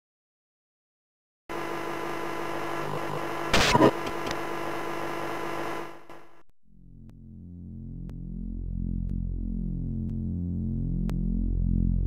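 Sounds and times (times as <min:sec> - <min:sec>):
electrical hum: 0:01.5 - 0:07.4
static hiss: 0:01.6 - 0:06.4.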